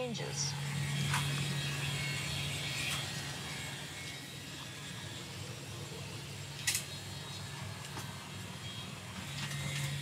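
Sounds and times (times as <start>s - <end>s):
ventilation fans humming: 0.0s - 10.0s.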